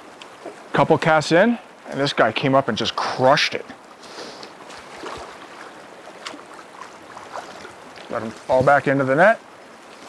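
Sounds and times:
creek running over gravel: 0:00.0 - 0:10.0
faint water splashes: 0:00.0 - 0:10.0.

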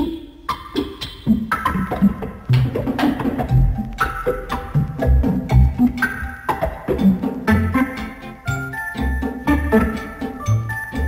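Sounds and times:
wood-block percussion clicks: 0:02.5 - 0:08.2.

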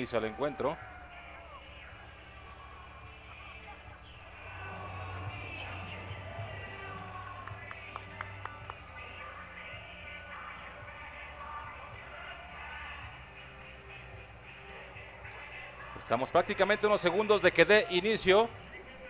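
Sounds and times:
distant voices: 0:00.0 - 0:19.0
music over public address: 0:00.0 - 0:19.0.

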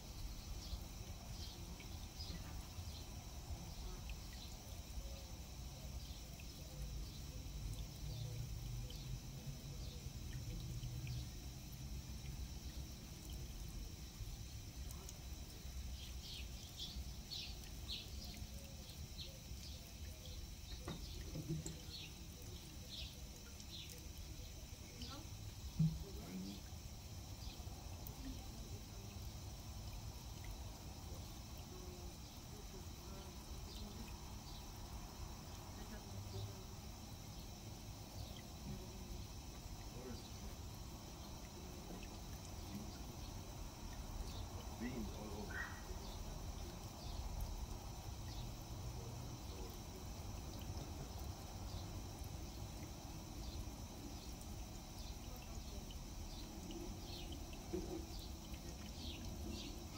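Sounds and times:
water trickling from watering can: 0:00.0 - 0:59.9
small birds chirping: 0:12.3 - 0:59.9.

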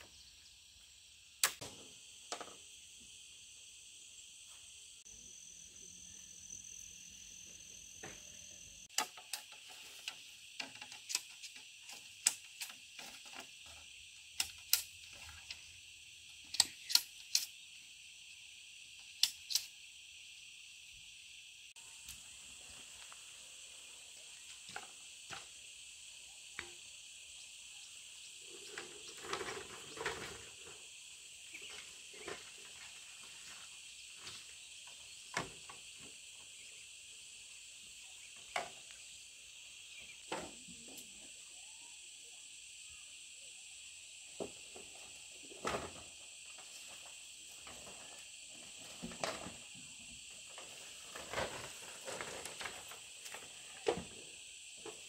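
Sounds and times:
insects chirring: 0:00.0 - 0:55.0.

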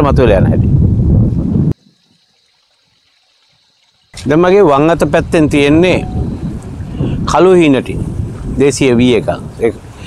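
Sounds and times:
wind rumbling on microphone: 0:00.0 - 0:02.2, 0:04.2 - 0:10.0.

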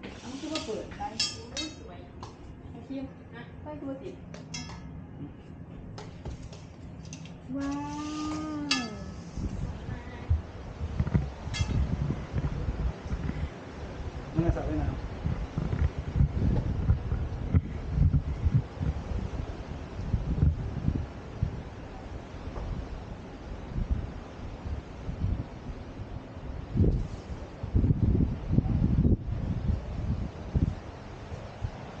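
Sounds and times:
wind buffeting microphone: 0:08.0 - 0:32.0.

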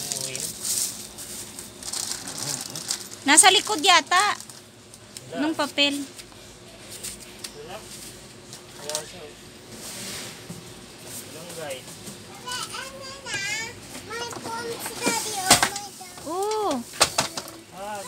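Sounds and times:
toddler babbling and calling out: 0:12.3 - 0:16.7.

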